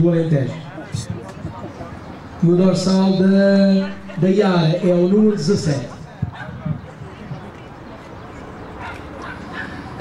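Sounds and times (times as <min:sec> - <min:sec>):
dog barking: 0:06.3 - 0:06.6, 0:08.8 - 0:09.9.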